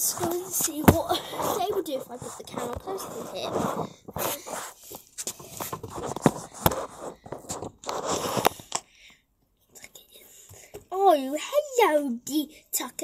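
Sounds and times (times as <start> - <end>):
rustling on microphone: 0.0 - 8.7.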